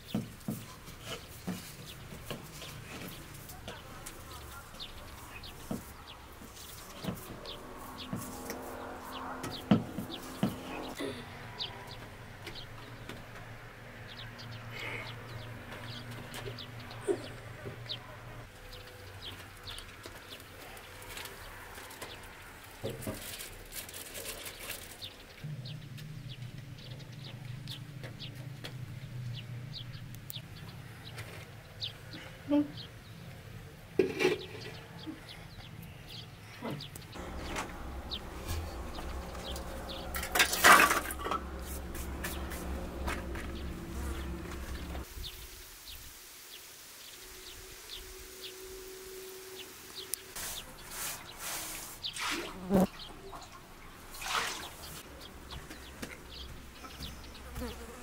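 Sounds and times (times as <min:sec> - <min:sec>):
fly buzzing: 0:37.2 - 0:53.0, 0:57.3 - 0:58.0.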